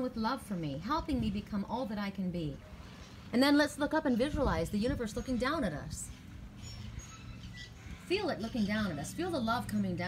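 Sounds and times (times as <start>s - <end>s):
low background hum: 0.0s - 10.0s
high bird chirps: 6.6s - 8.7s.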